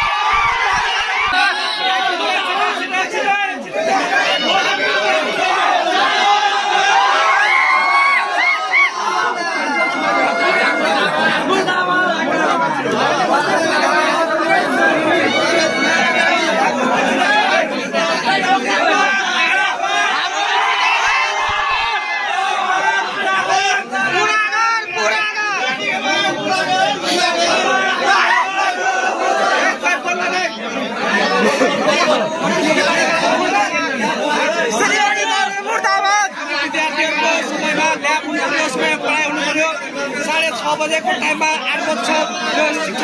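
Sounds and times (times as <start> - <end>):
crowd shouting and talking: 0.0 - 43.0.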